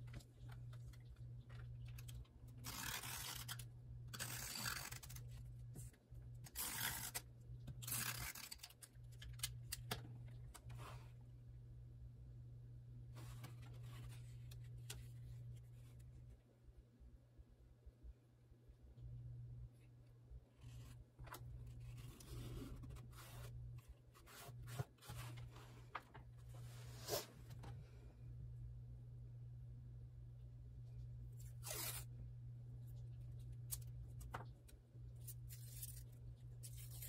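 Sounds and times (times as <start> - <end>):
low steady hum: 0.0 - 37.0
paper pages rustling: 20.6 - 27.3.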